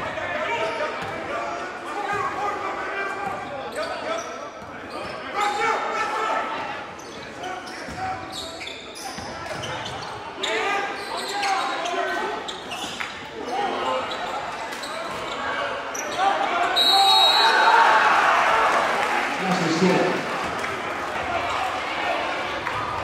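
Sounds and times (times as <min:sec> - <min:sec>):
voices of players and spectators: 0:00.0 - 0:23.0.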